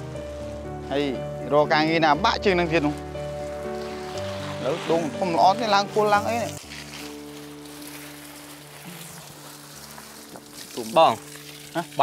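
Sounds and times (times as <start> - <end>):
background music: 0.0 - 12.0
garden hose spraying water: 0.0 - 12.0.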